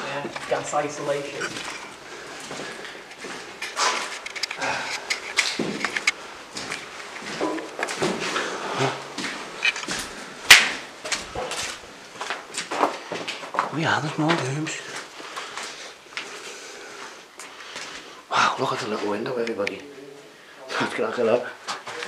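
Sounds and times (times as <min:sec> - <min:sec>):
footsteps crunching on rubble: 0:00.0 - 0:16.3.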